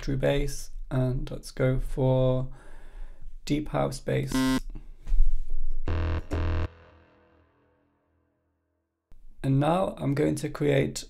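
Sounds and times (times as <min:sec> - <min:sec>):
deep synth bass notes: 0:05.9 - 0:07.8.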